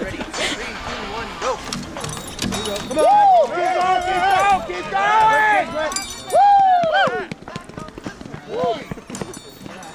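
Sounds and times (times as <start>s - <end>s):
onlookers shouting: 2.9s - 7.4s.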